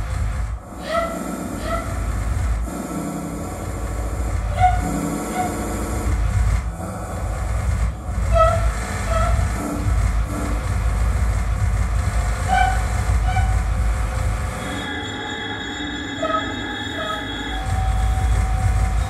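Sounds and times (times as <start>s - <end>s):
low steady rumble: 0.0s - 14.8s, 17.6s - 19.0s.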